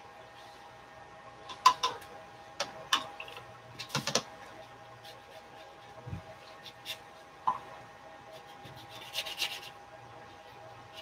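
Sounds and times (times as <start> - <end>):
paintbrush scratching on paper: 4.5 - 7.3, 8.2 - 11.0.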